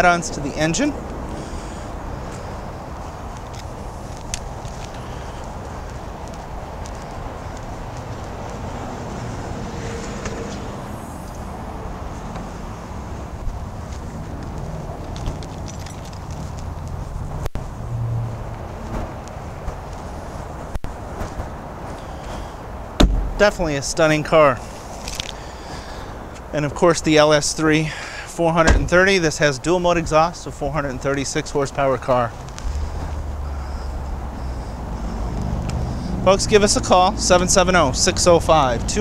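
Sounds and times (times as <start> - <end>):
steady low rumble: 0.0 - 26.6
footsteps on pavement: 0.8 - 26.6, 31.7 - 39.0.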